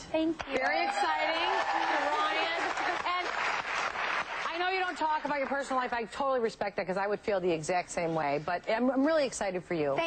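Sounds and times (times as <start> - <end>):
studio audience applause: 0.4 - 5.7.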